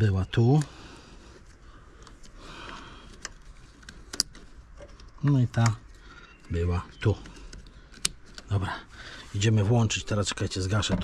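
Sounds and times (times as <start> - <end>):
sharp plastic clicks: 2.0 - 4.4, 5.0 - 5.8.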